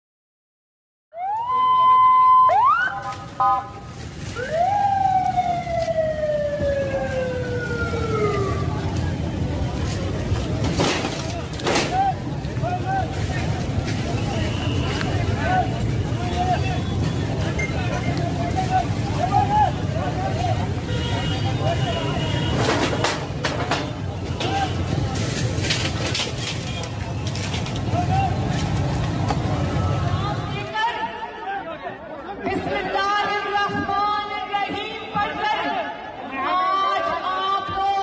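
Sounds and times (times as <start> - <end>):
siren chirps: 1.1 - 3.8, 4.4 - 8.9
ambulance siren wailing: 1.1 - 9.3
street noise: 1.1 - 38.0
crowd voices: 1.3 - 38.0.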